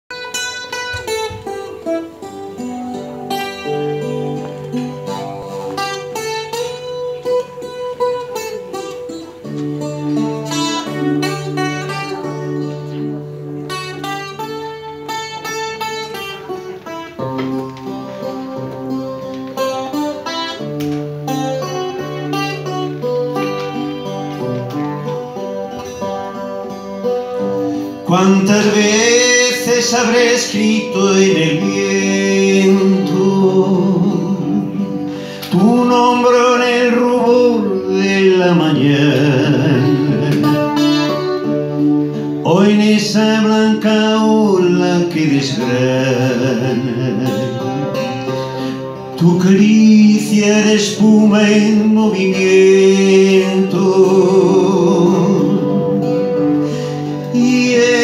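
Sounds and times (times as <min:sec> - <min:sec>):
plucked acoustic guitar: 0:00.1 - 0:58.0.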